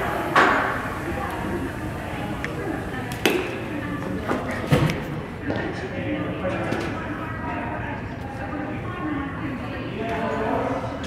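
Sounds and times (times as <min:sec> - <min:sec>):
busy room background noise: 0:00.0 - 0:11.0.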